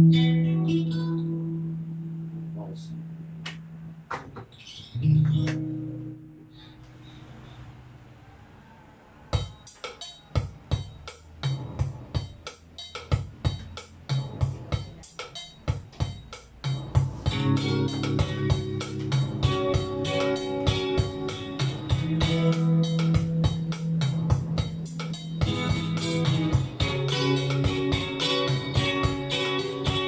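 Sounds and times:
guitar chords strummed: 0.0 - 7.0, 15.6 - 30.0
backing beat with low bass: 9.4 - 30.0.

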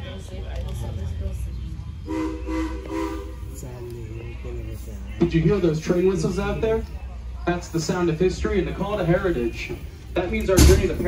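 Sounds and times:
steam locomotive whistle: 2.1 - 3.5.

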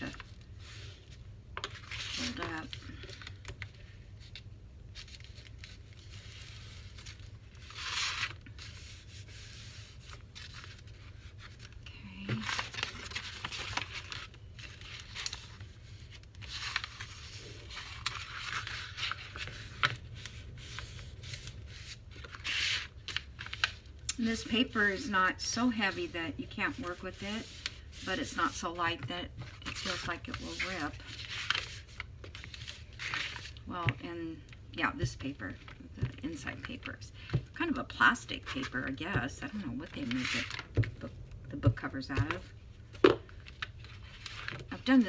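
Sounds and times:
paper rustling and sliding: 12.4 - 33.6.

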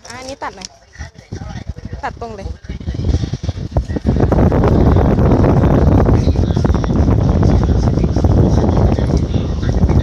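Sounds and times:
paper envelope crackling: 0.0 - 0.8.

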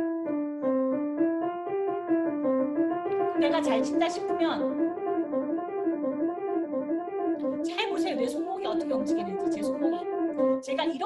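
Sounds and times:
piano playing scale exercise: 0.0 - 11.0.

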